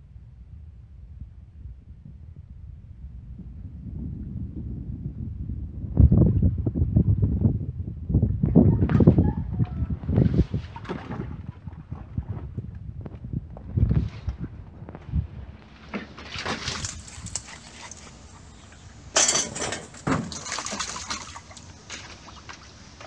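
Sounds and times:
wind rumble on microphone: 0.0s - 23.0s
puppies splashing in water: 10.0s - 12.6s, 15.6s - 23.0s.

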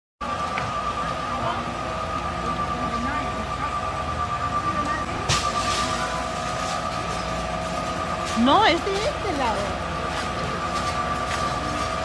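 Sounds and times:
fire engine high whine: 0.2s - 12.0s.

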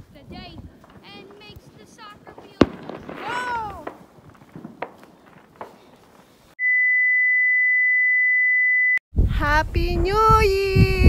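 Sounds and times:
faint outdoor hiss: 0.0s - 6.6s.

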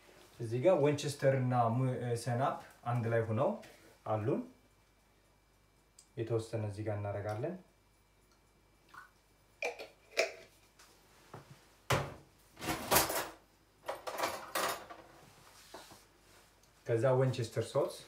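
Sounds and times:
items clattering and rustling: 11.4s - 16.0s.

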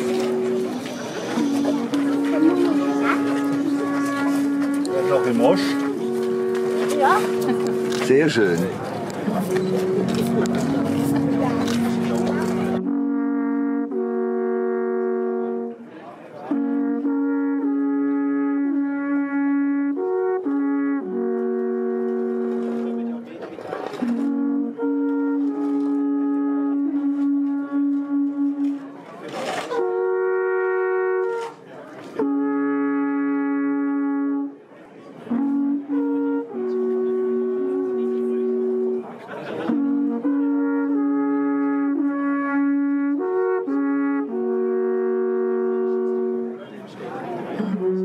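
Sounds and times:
brass instruments playing melody: 0.0s - 48.0s.

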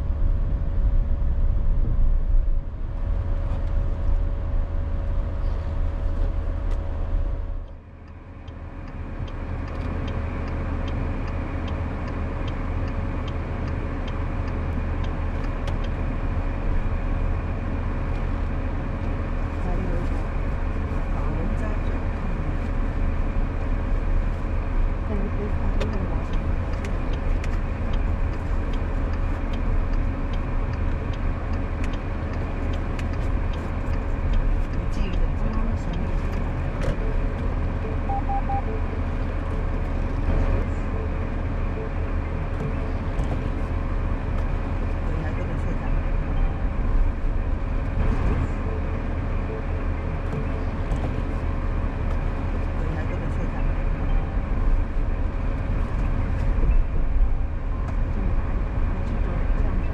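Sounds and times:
constant mid-pitched hum: 0.0s - 59.9s
low vehicle rumble: 0.0s - 59.9s.

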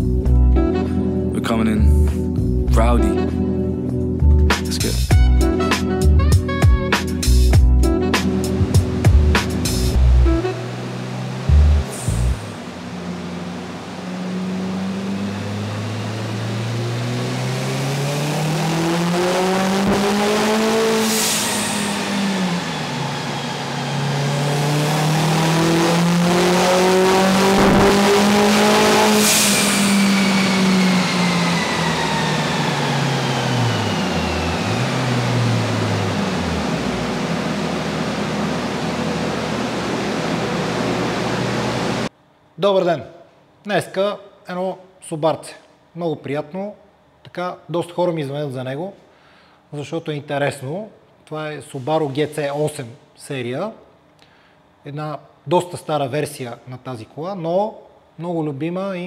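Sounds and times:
turbocharged engine revving: 4.5s - 42.1s.

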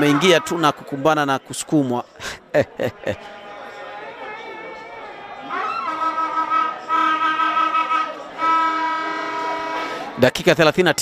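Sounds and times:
horn blasts: 5.4s - 10.2s.

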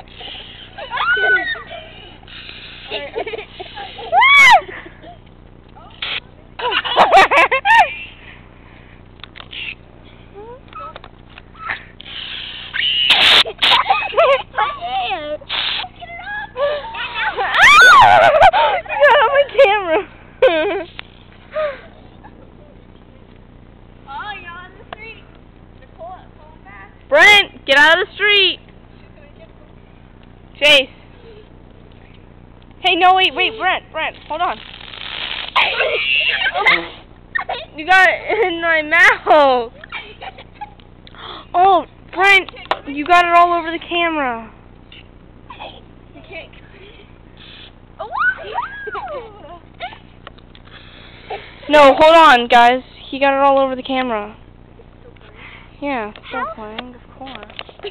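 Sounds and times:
children shrieking and crying: 0.6s - 2.2s, 4.0s - 4.9s, 16.0s - 19.3s, 35.6s - 37.8s, 48.0s - 50.1s
aerosol can spraying hisses: 2.2s - 4.1s, 12.0s - 13.8s, 15.5s - 16.0s, 34.6s - 36.2s, 47.4s - 47.8s.

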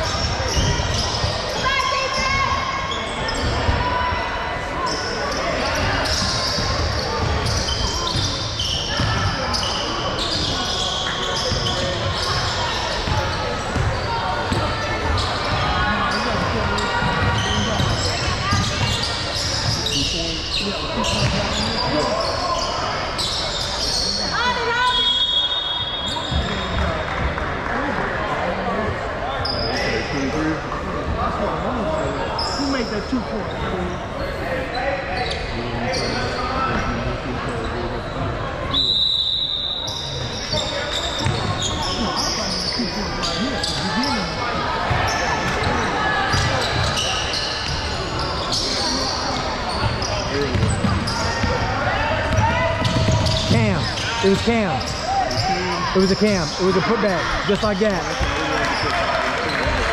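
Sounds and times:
crowd and player voices: 0.0s - 59.9s.

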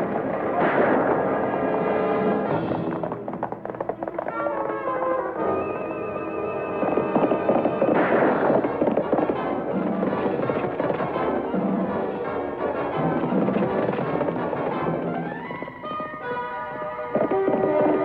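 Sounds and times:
gunshots: 0.0s - 5.0s, 6.7s - 18.0s
galloping hoofbeats: 0.0s - 18.0s.

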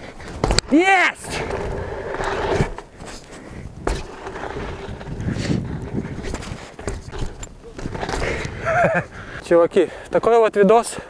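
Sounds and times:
bike tyres knocking on dirt: 0.2s - 1.8s
footsteps on dirt: 1.4s - 9.1s.

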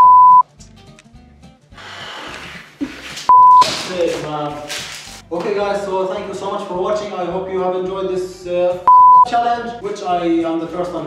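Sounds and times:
loud electronic bleeps: 0.0s - 0.4s, 3.3s - 3.6s, 8.9s - 9.3s.

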